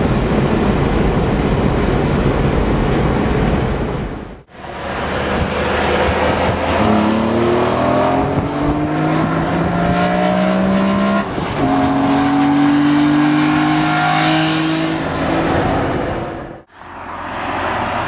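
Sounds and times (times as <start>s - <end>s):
car engine accelerating: 4.5s - 18.0s.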